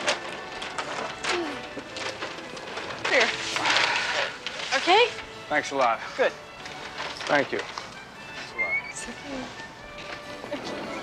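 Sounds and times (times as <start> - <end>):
background music: 0.0 - 11.0
paper bags rustling: 0.0 - 11.0.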